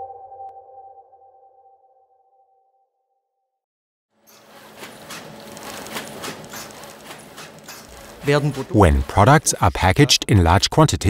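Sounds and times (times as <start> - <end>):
packaging machine clattering: 4.3 - 9.6.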